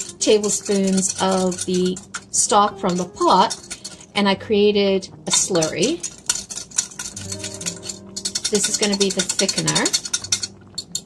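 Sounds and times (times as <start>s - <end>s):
utensil clinking against glass cup: 0.0s - 4.1s, 5.4s - 11.0s.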